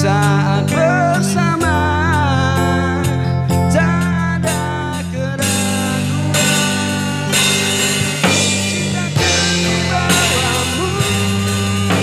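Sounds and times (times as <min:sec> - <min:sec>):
drum kit beat: 0:00.0 - 0:12.0
electronic keyboard: 0:00.0 - 0:12.0
guitar-like parts: 0:00.0 - 0:12.0.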